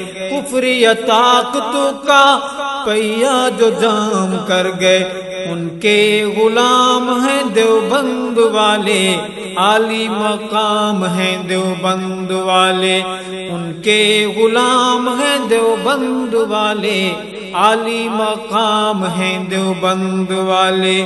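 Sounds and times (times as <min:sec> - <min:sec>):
voices singing wordless melody: 0:00.0 - 0:21.0.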